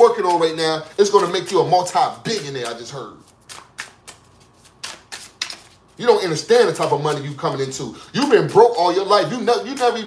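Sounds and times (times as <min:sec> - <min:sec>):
cards tapping: 0:00.0 - 0:07.8, 0:08.5 - 0:10.0.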